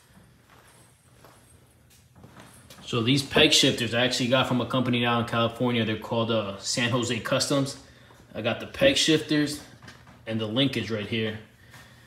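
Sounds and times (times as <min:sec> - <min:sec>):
footsteps on concrete floor: 0:00.0 - 0:03.9, 0:06.9 - 0:12.0.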